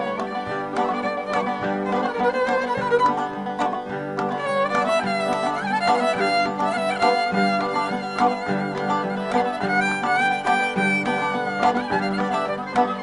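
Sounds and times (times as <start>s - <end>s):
plucked zither notes: 0.0s - 13.0s
violin melody with vibrato: 0.0s - 13.0s.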